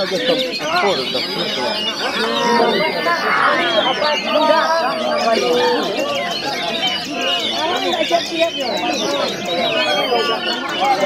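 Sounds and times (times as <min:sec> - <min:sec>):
men shouting: 0:00.0 - 0:07.8
songbirds warbling and whistling: 0:00.0 - 0:11.0.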